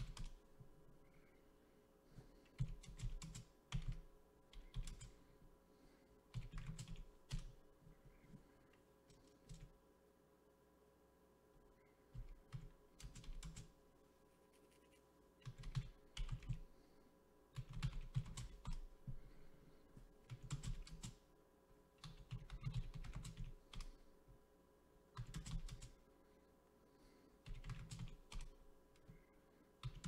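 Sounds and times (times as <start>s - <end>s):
typing on computer keyboard: 0.0s - 0.4s, 2.5s - 5.2s, 6.3s - 7.6s, 9.1s - 9.8s, 12.1s - 13.8s, 14.8s - 16.7s, 17.6s - 18.9s, 20.2s - 21.2s, 22.0s - 24.0s, 25.2s - 26.0s, 27.4s - 29.2s, 29.8s - 30.0s.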